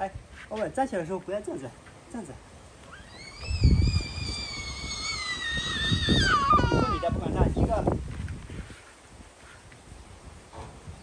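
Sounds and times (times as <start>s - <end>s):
child's high-pitched squeal: 3.0s - 7.2s.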